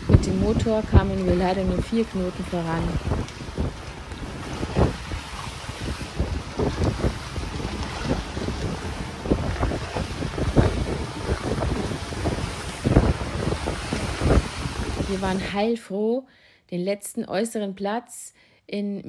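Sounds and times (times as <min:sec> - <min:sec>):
waves rushing along hull: 0:00.0 - 0:15.7
wind buffeting microphone: 0:00.0 - 0:15.7.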